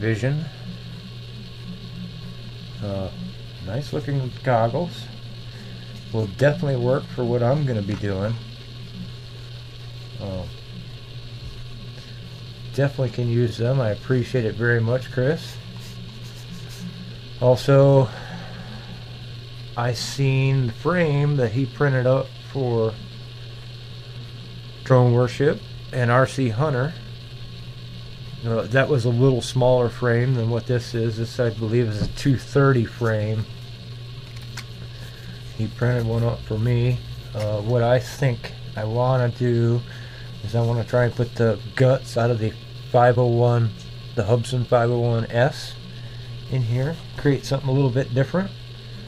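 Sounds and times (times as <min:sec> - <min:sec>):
man talking: 0:00.0 - 0:00.6, 0:02.8 - 0:05.1, 0:06.1 - 0:08.4, 0:10.2 - 0:10.6, 0:12.8 - 0:15.6, 0:17.4 - 0:18.2, 0:28.4 - 0:33.5, 0:35.6 - 0:45.8, 0:46.5 - 0:48.6
steady low hum: 0:00.0 - 0:49.0.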